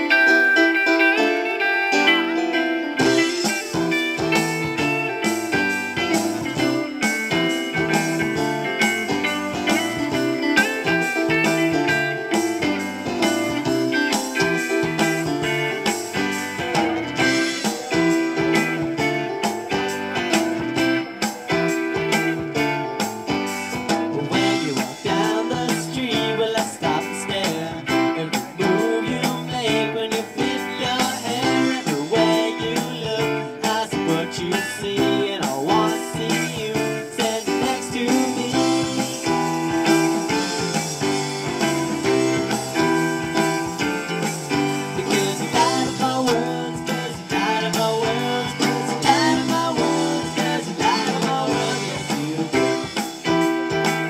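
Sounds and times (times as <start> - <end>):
electric guitar: 0.0 - 54.0
live rock band playing: 0.0 - 54.0.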